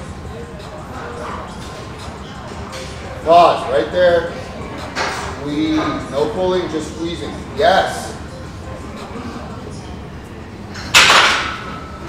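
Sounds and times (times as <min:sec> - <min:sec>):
metallic clank of gym machine: 0:10.8 - 0:11.9.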